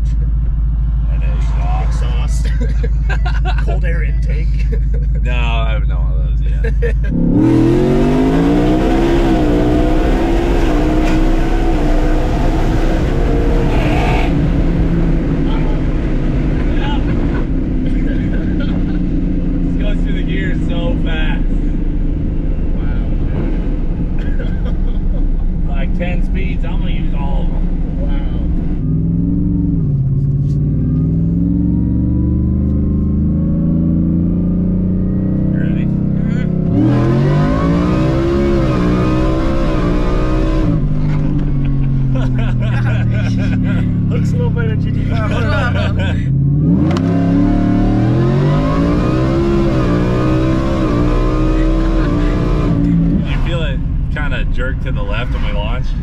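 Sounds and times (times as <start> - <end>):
truck engine revving: 0.0 - 56.0.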